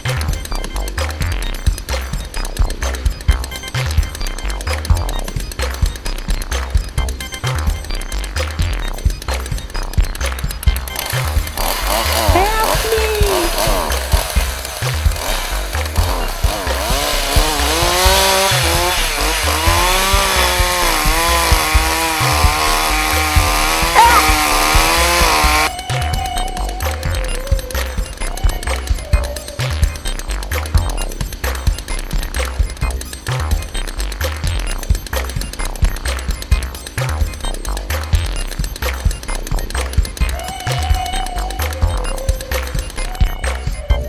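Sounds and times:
music with steady bass beat: 0.0 - 44.0
chainsaw revving: 10.8 - 25.7.

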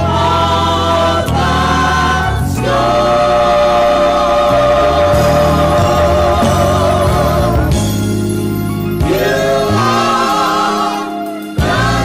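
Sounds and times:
gospel choir singing: 0.0 - 12.0.

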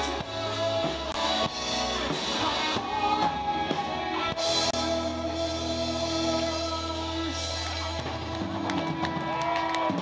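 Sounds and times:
audience clapping: 8.0 - 10.0.

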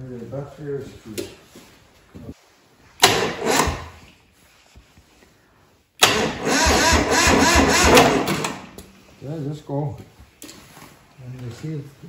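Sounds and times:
starter motor cranking diesel engine: 3.1 - 3.8, 6.0 - 8.7.

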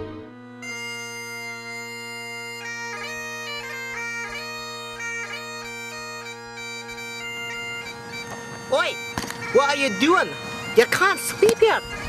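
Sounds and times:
bagpipe chanter high note: 0.0 - 12.0
bagpipe drones low note: 0.0 - 12.0.

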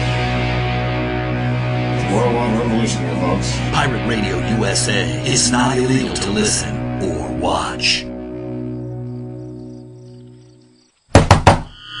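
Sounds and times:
held musical chord: 0.0 - 10.8
loud thunks: 11.1 - 11.7.

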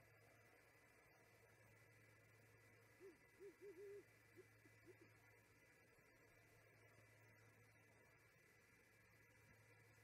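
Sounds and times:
owl hooting: 2.9 - 5.2.

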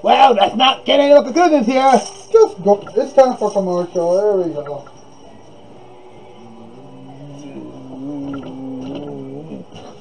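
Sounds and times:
man humming low: 6.4 - 10.0.

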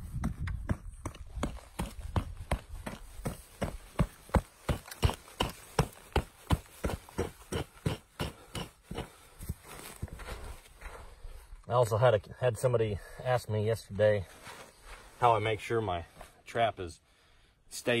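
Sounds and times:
hammer striking packed soil: 0.0 - 10.3.

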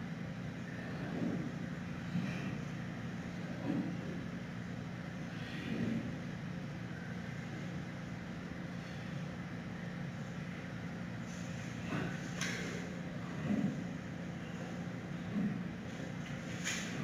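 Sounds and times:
low mechanical hum: 0.0 - 17.0.

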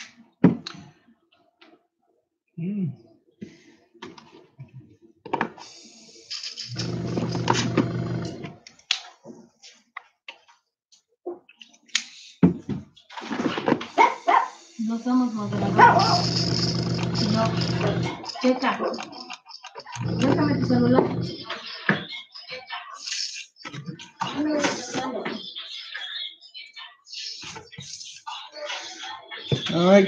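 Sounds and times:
air compressor motor hum: 6.7 - 8.4, 15.4 - 18.2, 20.0 - 21.4.

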